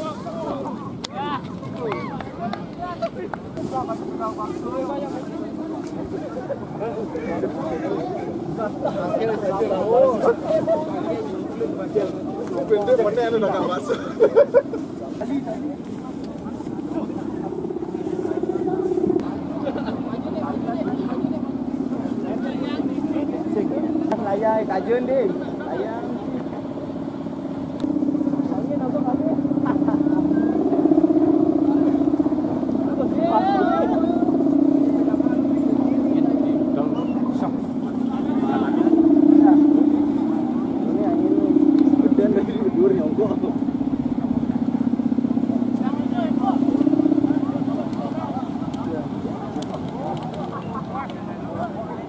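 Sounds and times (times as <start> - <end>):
kite hummer droning in wind: 0.0 - 52.0
voices calling out: 0.0 - 52.0.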